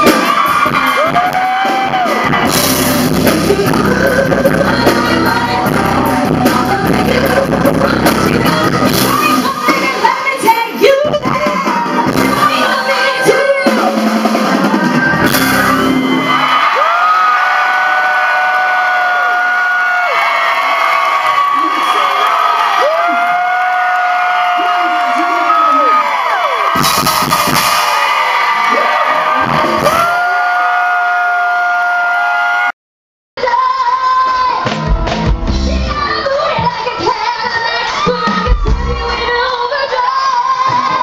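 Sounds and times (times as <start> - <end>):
live pop dance music: 0.0 - 32.4, 33.4 - 41.0
audience whooping and yelling: 0.0 - 32.7, 35.8 - 41.0.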